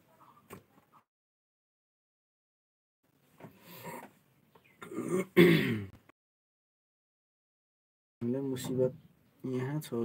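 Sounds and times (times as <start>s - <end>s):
person clearing throat: 4.8s - 6.0s.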